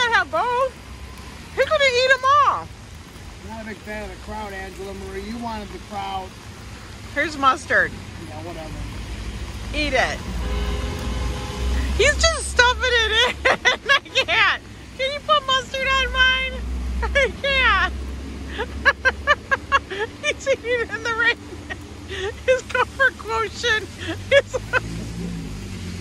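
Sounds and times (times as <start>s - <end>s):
voices talking: 0.0s - 0.8s, 1.5s - 10.7s, 11.7s - 25.6s
traffic on wet roads: 0.0s - 26.0s
vehicle rumbling past: 23.3s - 26.0s.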